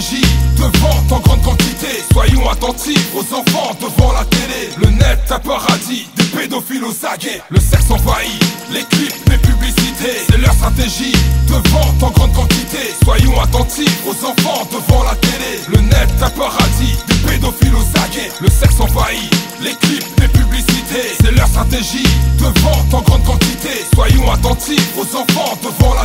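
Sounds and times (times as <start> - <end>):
rapping over a beat: 0.0 - 26.0
deep sustained bass: 10.5 - 12.5, 15.9 - 18.0.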